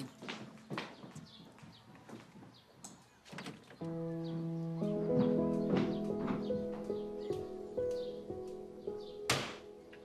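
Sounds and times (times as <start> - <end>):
sustained background chords: 3.8 - 10.0.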